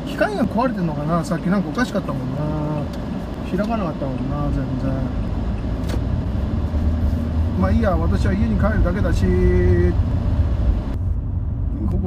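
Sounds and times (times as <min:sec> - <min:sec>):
person speaking: 0:00.0 - 0:05.2
car engine and tyres rumbling: 0:00.0 - 0:12.0.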